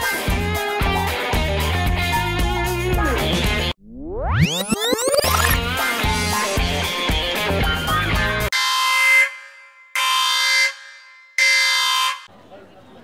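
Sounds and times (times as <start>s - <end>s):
music with a beat: 5.2s - 8.5s
air horn blasts: 8.5s - 12.3s.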